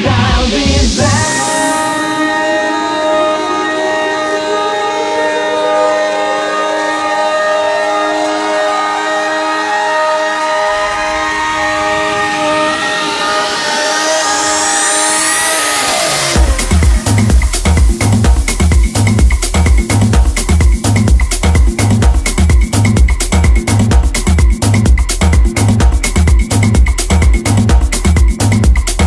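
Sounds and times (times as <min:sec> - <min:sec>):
kick drum and bass: 0:00.0 - 0:02.4, 0:16.2 - 0:29.0
rising synth sweep: 0:00.0 - 0:18.8
sustained synth chords: 0:00.0 - 0:19.8.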